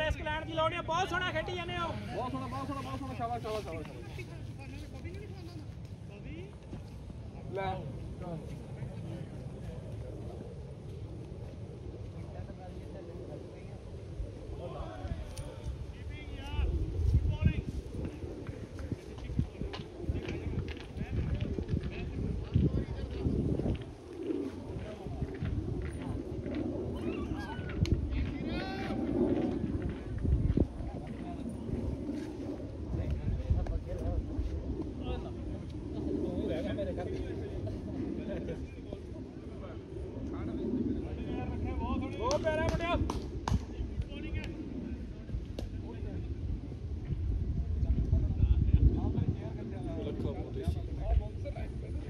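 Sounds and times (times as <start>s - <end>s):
distant voices: 0.0s - 52.0s
low rumble on microphone: 0.0s - 52.0s.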